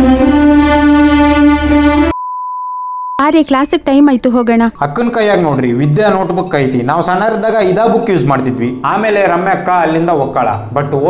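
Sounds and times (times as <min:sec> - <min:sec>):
music: 0:00.0 - 0:02.2, 0:03.6 - 0:11.0
high censor beep: 0:02.1 - 0:03.3.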